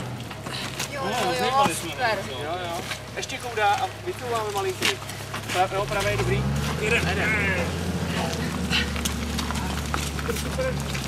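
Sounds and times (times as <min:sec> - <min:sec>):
voices calling out: 0:00.0 - 0:11.0
motorcycle engine revving: 0:05.1 - 0:11.0.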